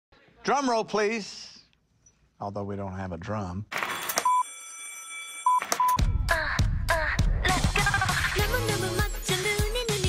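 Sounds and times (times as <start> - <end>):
short beeps: 4.2 - 4.6, 5.4 - 6.0.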